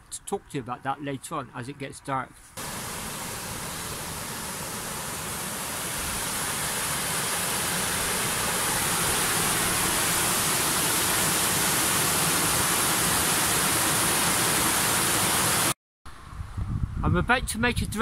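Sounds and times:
water pouring over weir: 2.6 - 15.7.

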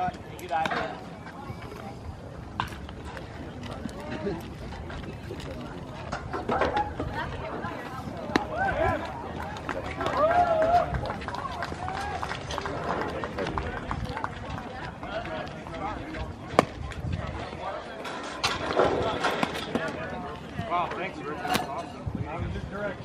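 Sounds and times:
spectators talking: 0.0 - 23.0.

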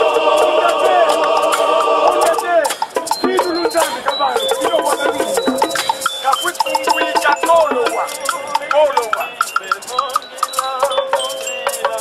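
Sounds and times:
bright bell-like notes: 0.0 - 12.0
rattle or shaker: 0.0 - 12.0.

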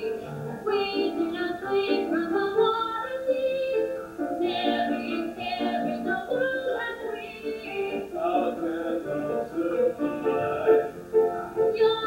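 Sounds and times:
woman singing: 0.0 - 8.2, 11.7 - 12.0.

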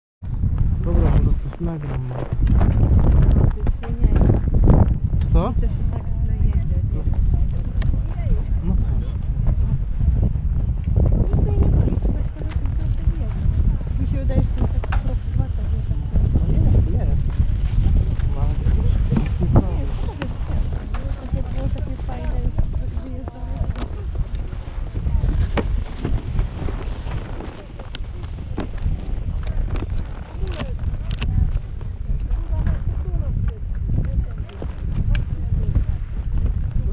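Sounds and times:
wind buffeting microphone: 0.2 - 36.9.

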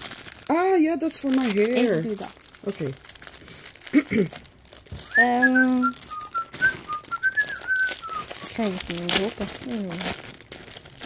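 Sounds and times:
plastic packaging crinkling: 0.0 - 11.0
person speaking: 5.0 - 6.0
person whistling a tune: 5.0 - 8.5.

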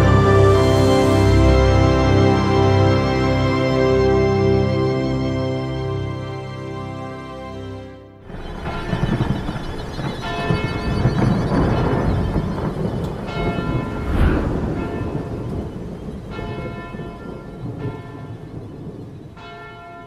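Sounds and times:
loud thunderclap: 8.3 - 19.7
rumbling thunder: 8.3 - 20.0
church bell tolling: 13.2 - 20.0.

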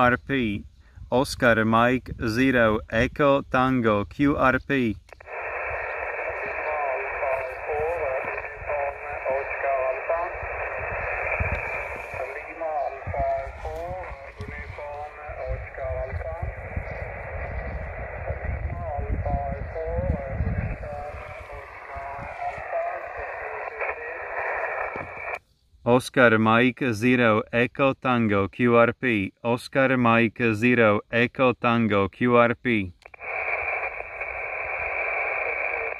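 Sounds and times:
narrow-band radio voice: 0.0 - 35.9
static hiss: 4.5 - 25.4, 33.0 - 35.9.

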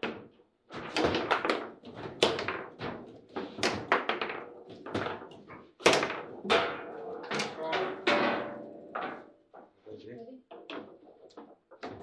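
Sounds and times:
foosball ball knocks and thunks: 0.0 - 9.4, 10.5 - 12.0.

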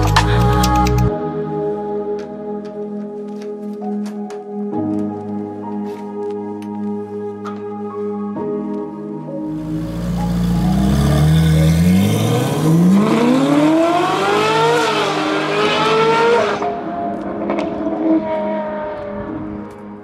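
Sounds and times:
background music: 0.0 - 20.0
car engine accelerating hard: 9.5 - 16.7.

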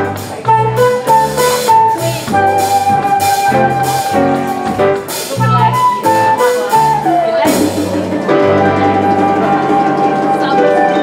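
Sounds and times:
cymbals: 0.0 - 11.0
flute melody: 0.0 - 11.0
piano chords: 0.0 - 11.0
walking bass notes: 0.0 - 11.0.

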